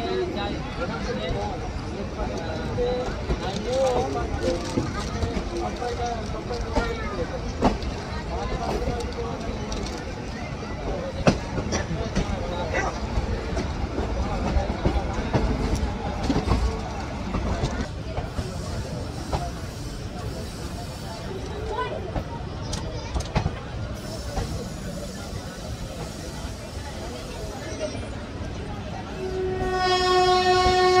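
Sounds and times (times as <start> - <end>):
train coaches rumbling: 0.0 - 31.0
train horn blast: 29.2 - 31.0.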